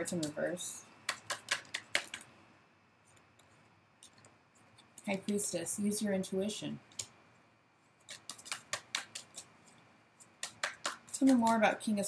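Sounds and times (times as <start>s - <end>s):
cards being shuffled: 1.1s - 2.3s, 8.0s - 11.6s.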